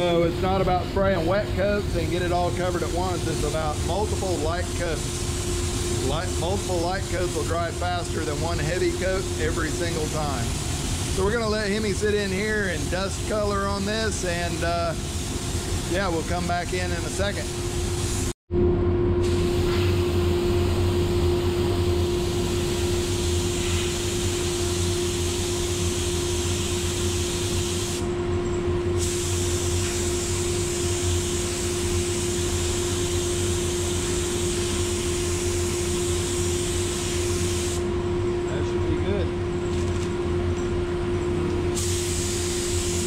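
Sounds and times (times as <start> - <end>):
ventilation humming: 0.0 - 43.0
paint spray gun hissing: 8.4 - 18.3, 22.2 - 28.0, 29.0 - 37.8, 41.8 - 43.0.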